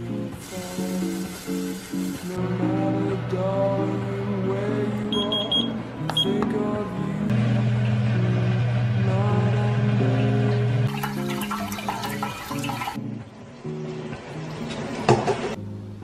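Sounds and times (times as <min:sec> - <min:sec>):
background guitar music: 0:00.0 - 0:16.0
kitchen timer beeps: 0:05.1 - 0:06.4
water pouring into sink: 0:10.9 - 0:13.0.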